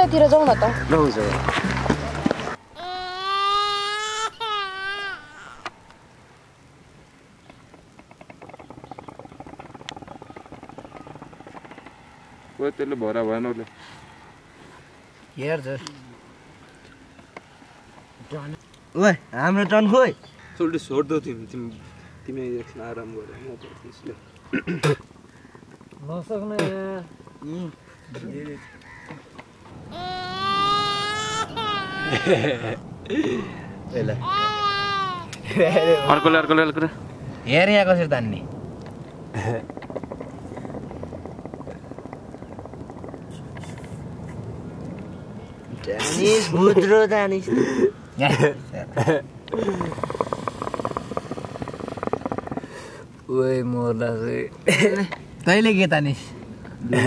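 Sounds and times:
high wailing voice: 0:29.9 - 0:32.8, 0:34.1 - 0:36.6
man's high-pitched vocal cry: 0:34.2 - 0:36.7.

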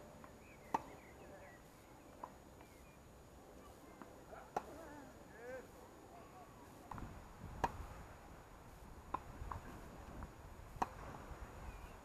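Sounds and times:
birds chirping faintly: 0:00.0 - 0:06.9, 0:10.8 - 0:12.0
tennis ball struck by racket: 0:06.9 - 0:07.9, 0:09.0 - 0:11.1.

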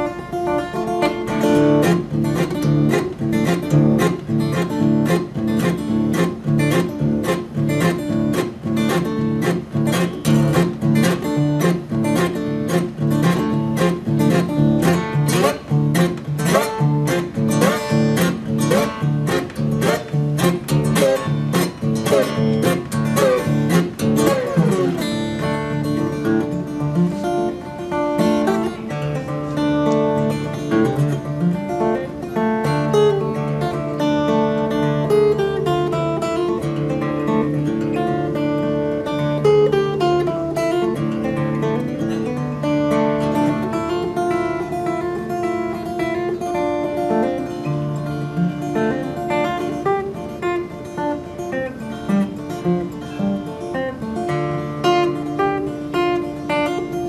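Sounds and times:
fingerstyle acoustic guitar: 0:00.0 - 0:57.0.

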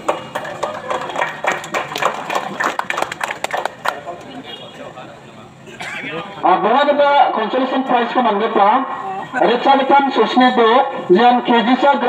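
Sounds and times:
crowd hand claps: 0:00.0 - 0:04.4
low crowd voices: 0:00.0 - 0:06.5.

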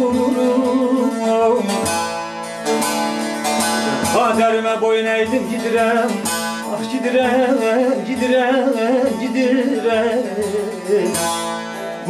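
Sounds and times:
saz playing plucked folk melody: 0:00.0 - 0:12.0.

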